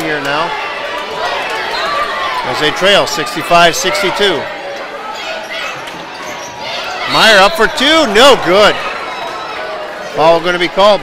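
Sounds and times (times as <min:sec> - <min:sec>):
gymnasium crowd noise: 0:00.0 - 0:11.0.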